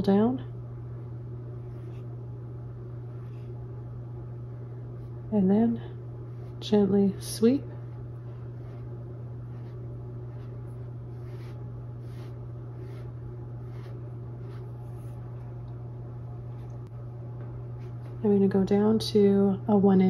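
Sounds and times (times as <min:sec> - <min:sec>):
steady low hum: 0:00.0 - 0:20.0
brush swishing over canvas: 0:01.5 - 0:02.2, 0:03.0 - 0:03.7, 0:06.2 - 0:15.6.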